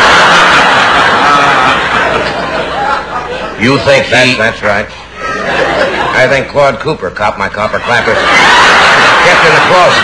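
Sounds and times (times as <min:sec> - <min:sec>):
audience applauding: 0:00.0 - 0:02.4
audience laughing: 0:00.0 - 0:03.8, 0:05.2 - 0:06.5, 0:07.7 - 0:10.0.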